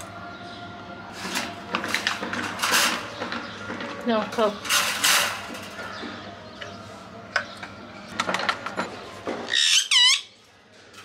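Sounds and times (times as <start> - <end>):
wire birdcage rattling: 4.4 - 6.0.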